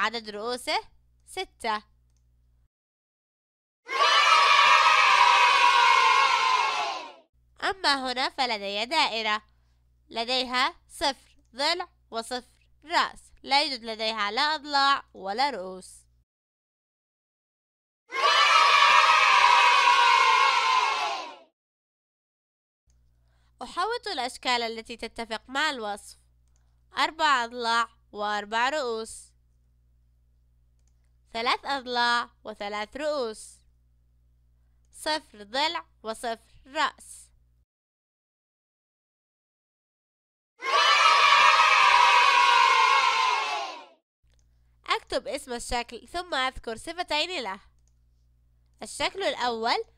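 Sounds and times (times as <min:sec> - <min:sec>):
children cheering and shouting: 0:03.9 - 0:07.2, 0:18.1 - 0:21.5, 0:40.6 - 0:44.0.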